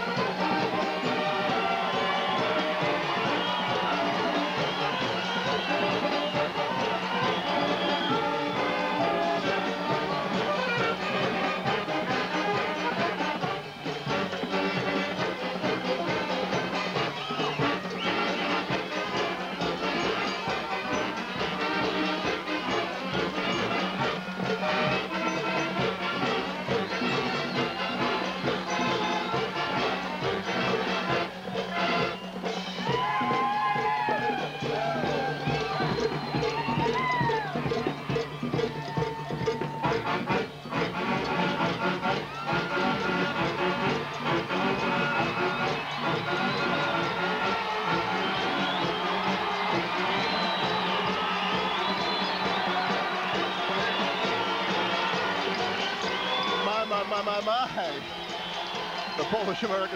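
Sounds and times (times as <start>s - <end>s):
crowd cheering: 0.0s - 59.9s
string band playing: 0.0s - 59.9s.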